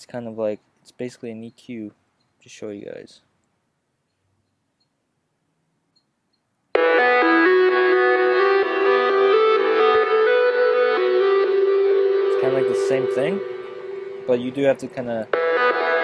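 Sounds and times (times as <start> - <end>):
synthesizer chords: 6.7 - 16.0.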